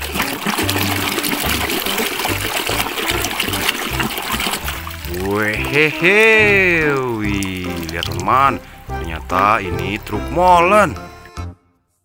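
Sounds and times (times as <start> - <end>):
scrubbing toy under water: 0.0 - 11.4
water sloshing and splashing: 0.0 - 11.4
background music: 0.0 - 12.0.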